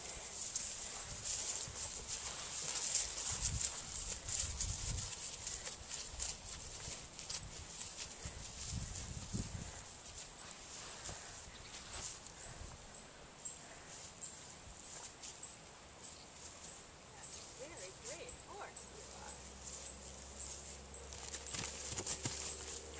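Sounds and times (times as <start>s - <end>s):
hooves thudding on grass: 0.0s - 22.9s.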